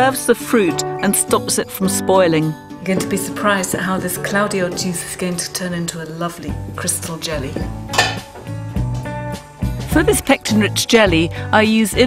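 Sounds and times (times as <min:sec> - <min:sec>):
plucked guitar and bass music: 0:06.5 - 0:12.0
cookware clanking on range: 0:07.9 - 0:08.5.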